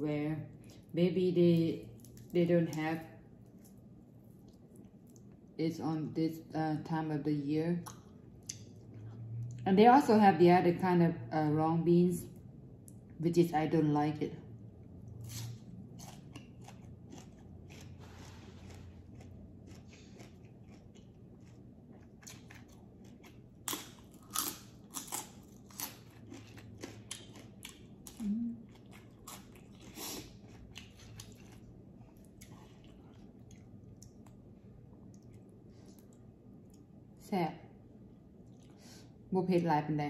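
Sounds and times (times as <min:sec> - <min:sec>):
chewing crisp raw vegetables: 0:15.1 - 0:36.9.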